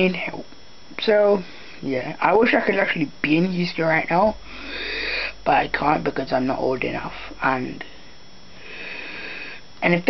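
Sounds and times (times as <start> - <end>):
man sniffing: 4.5 - 5.4, 8.6 - 9.6.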